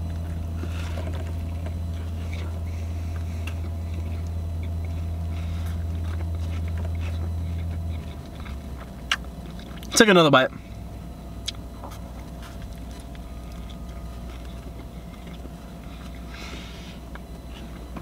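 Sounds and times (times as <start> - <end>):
chewing: 0.0 - 10.0, 11.4 - 18.0
car engine idling hum: 0.0 - 18.0.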